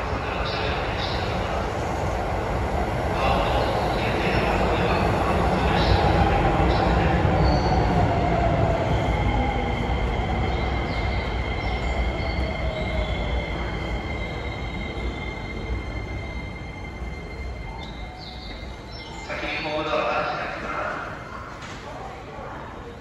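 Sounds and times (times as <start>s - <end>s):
electric train pulling in: 0.0s - 21.2s.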